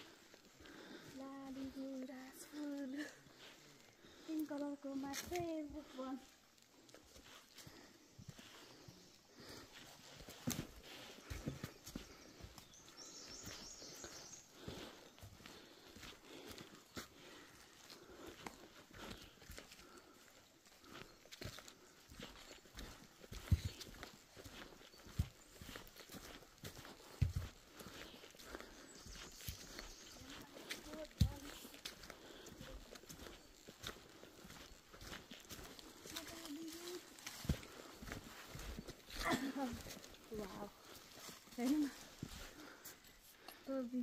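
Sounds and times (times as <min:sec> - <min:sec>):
footsteps crunching on leaves: 0:06.9 - 0:43.0.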